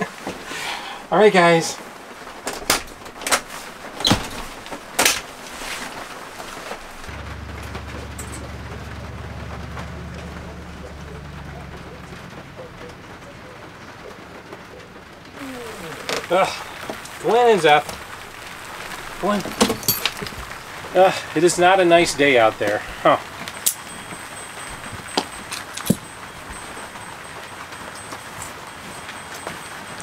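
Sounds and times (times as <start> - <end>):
steady rain: 0.0 - 30.0
vehicle engine hum: 6.2 - 30.0.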